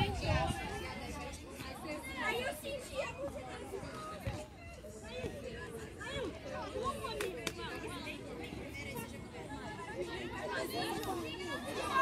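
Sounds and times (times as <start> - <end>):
people calling and chattering: 0.0 - 12.0.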